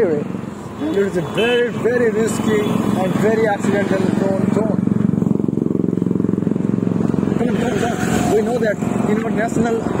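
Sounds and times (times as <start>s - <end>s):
voices talking: 0.0s - 5.2s
highway traffic: 0.0s - 10.0s
vehicle engine running pulsing: 0.0s - 10.0s.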